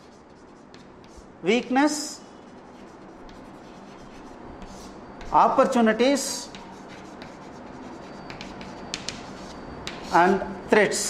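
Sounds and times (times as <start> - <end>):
chalk scratching on chalkboard: 0.0 - 1.3, 2.4 - 5.5, 6.3 - 10.4.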